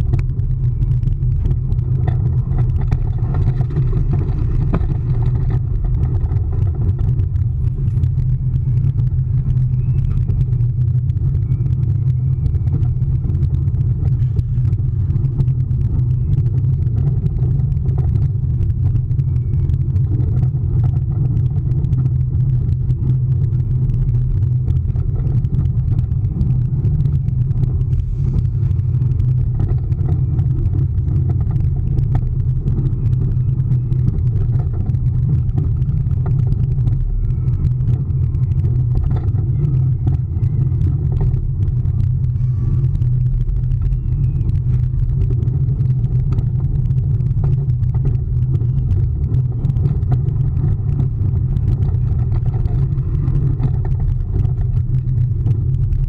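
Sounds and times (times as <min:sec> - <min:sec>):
roller coaster rumbling on steel track: 0:00.0 - 0:56.0
wind on microphone: 0:00.0 - 0:56.0.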